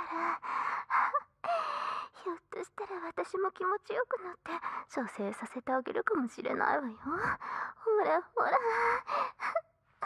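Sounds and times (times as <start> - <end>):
woman gasping breaths: 0.0 - 2.2.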